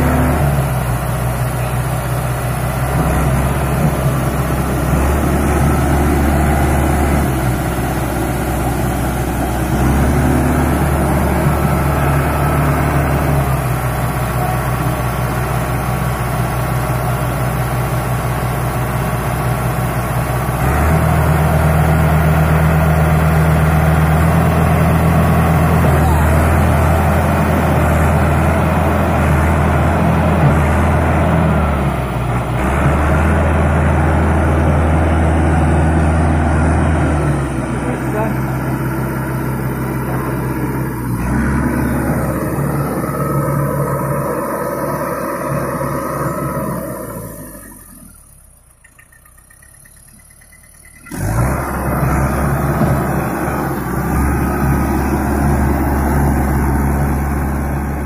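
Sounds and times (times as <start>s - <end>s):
tractor diesel engine working hard: 0.0s - 58.0s.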